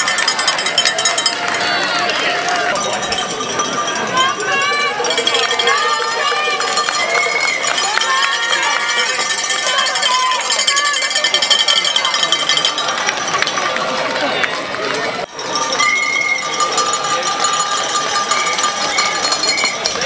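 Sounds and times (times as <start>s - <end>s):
crowd shouting and cheering: 0.0s - 20.0s.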